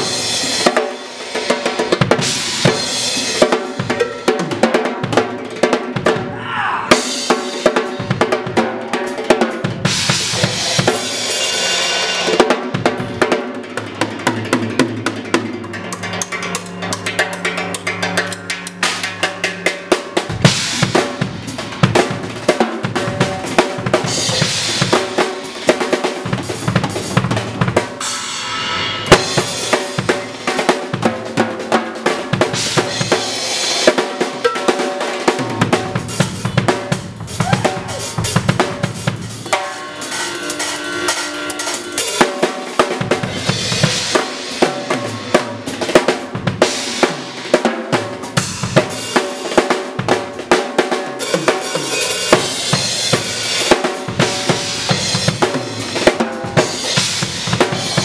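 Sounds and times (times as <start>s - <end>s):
drum kit played fast: 0.0s - 58.0s
cymbal crashes: 9.8s - 13.2s, 26.6s - 31.3s, 32.6s - 45.8s, 51.2s - 58.0s.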